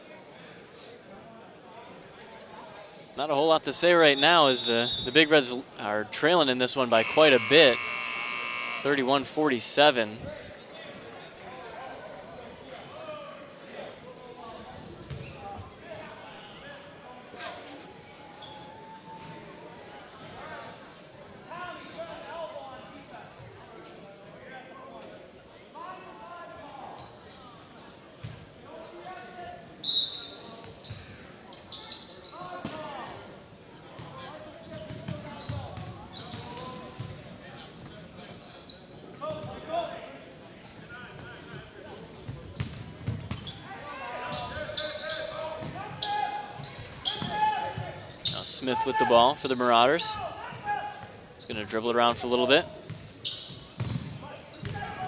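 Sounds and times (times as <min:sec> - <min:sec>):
spectators chatter: 0:00.0 - 0:55.0.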